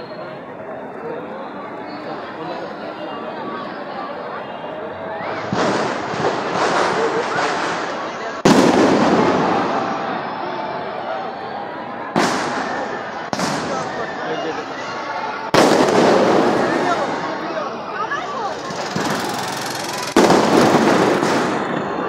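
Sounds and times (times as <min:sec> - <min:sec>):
firework crackle and pops: 0:05.3 - 0:09.8, 0:12.2 - 0:14.0, 0:15.5 - 0:17.4, 0:18.6 - 0:22.0
firework shells bursting: 0:18.6 - 0:22.0.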